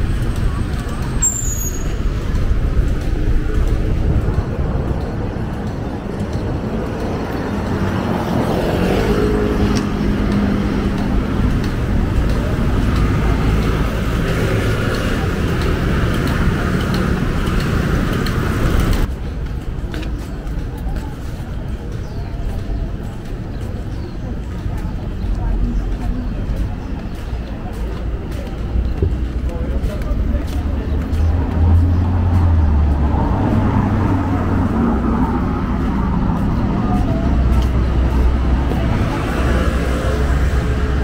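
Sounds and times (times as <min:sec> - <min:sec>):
cars and scooters passing: 0:00.0 - 0:41.0
faint voices of passers-by: 0:00.0 - 0:41.0
vehicle engine: 0:00.0 - 0:41.0.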